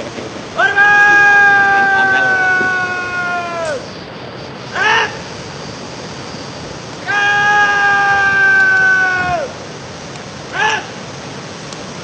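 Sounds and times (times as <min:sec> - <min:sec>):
person shouting commands: 0:00.6 - 0:03.8.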